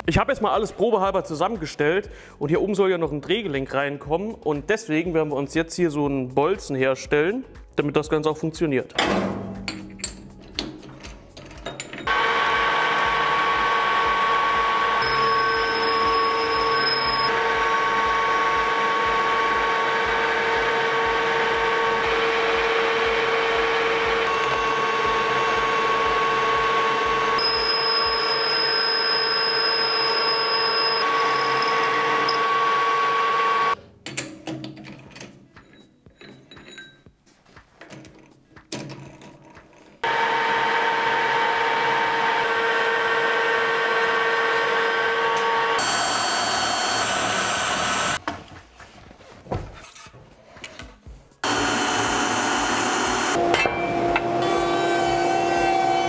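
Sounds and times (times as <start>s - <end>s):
metal lathe humming and whining: 12.1s - 33.8s, 40.0s - 48.2s, 51.4s - 56.0s.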